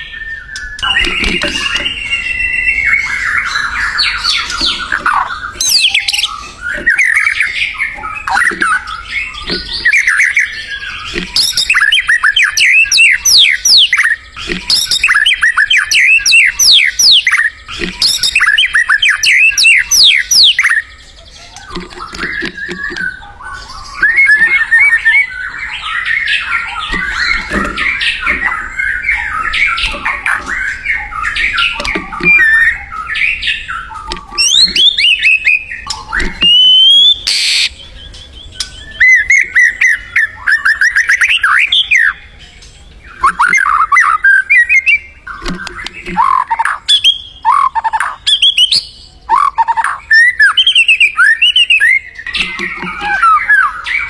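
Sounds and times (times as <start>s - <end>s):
songbird whistling and warbling: 0.0s - 54.0s.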